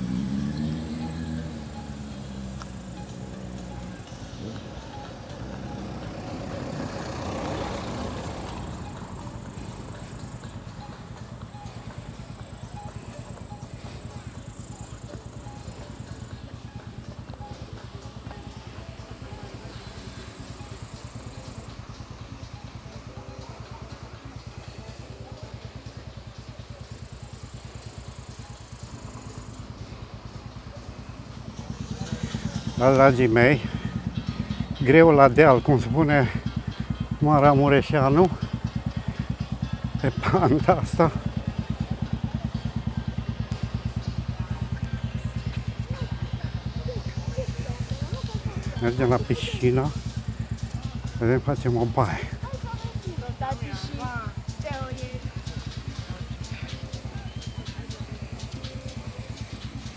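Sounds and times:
car driving past: 0.0s - 12.2s
steady low rumble: 7.7s - 59.9s.

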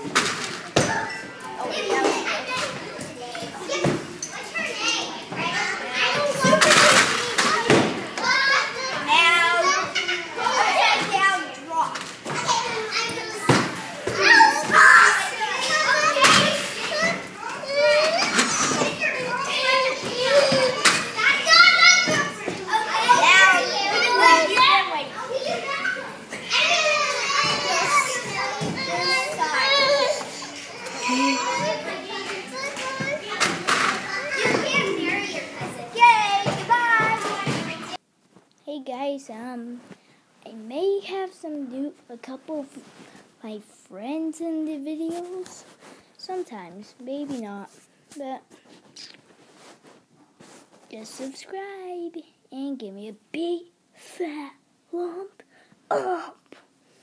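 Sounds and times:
children shouting and laughing: 0.7s - 38.0s.

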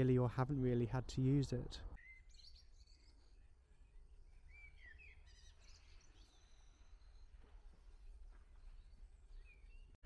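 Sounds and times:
faint bird chirp: 1.8s - 10.0s.

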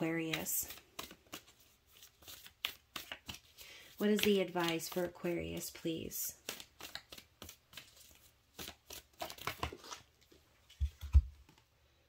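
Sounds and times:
cards being shuffled: 0.1s - 11.6s.

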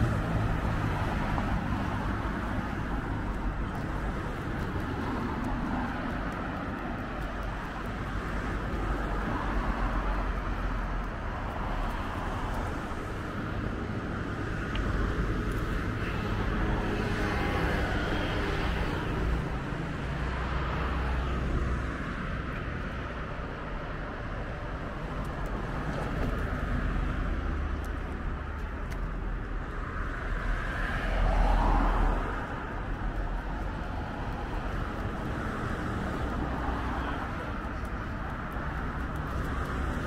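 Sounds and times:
cars passing: 0.0s - 40.0s.

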